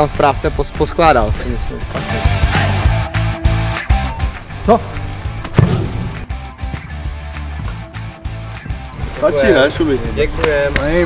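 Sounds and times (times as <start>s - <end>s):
background music with bass beat: 0.0s - 11.0s.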